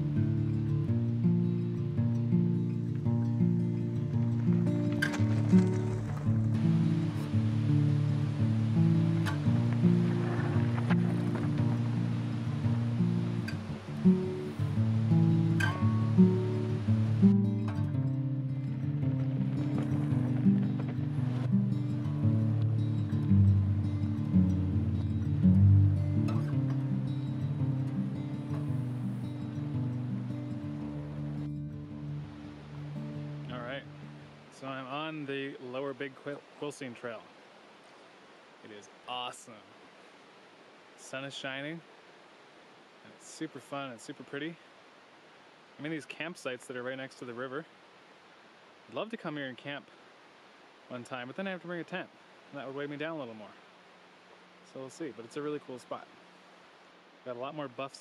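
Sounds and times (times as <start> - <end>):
instrumental background music: 0.0 - 34.3.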